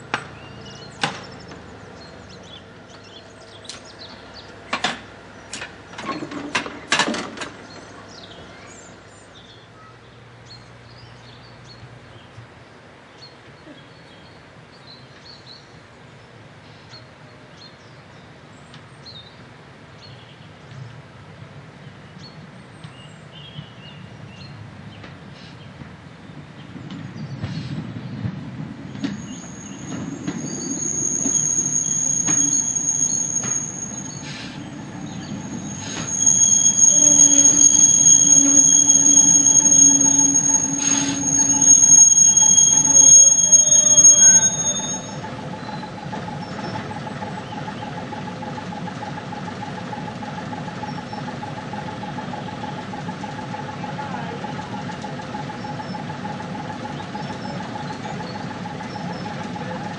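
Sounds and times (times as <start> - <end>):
train brakes squealing: 27.4 - 59.9.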